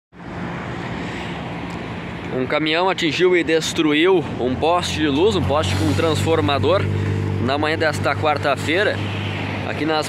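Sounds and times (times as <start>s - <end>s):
highway traffic noise: 0.1s - 10.0s.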